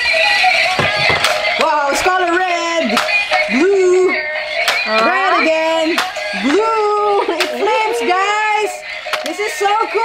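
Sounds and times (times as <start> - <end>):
toy car electronic music: 0.0 - 10.0.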